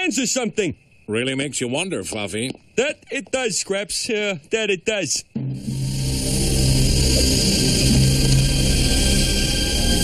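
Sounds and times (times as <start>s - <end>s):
tense cartoon background score: 5.3s - 10.0s.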